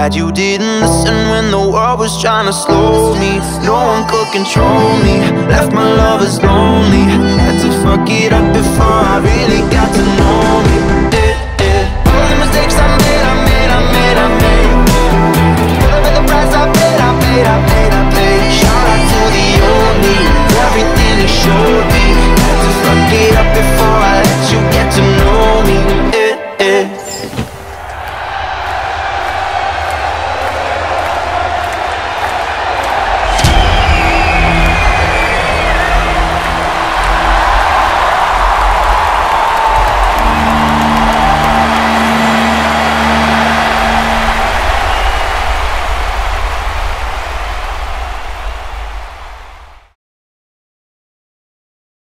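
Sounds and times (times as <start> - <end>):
stadium crowd cheering and screaming: 2.7 - 26.2, 27.1 - 50.0
shrill whistle: 33.2 - 36.4.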